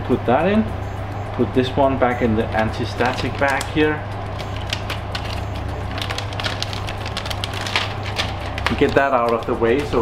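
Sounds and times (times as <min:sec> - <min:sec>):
steady low hum: 0:00.0 - 0:10.0
plastic bag crinkling: 0:02.9 - 0:09.6.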